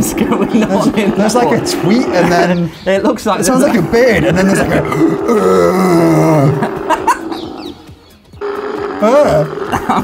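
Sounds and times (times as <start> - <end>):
camel groaning call: 0.0 - 2.8, 3.4 - 10.0.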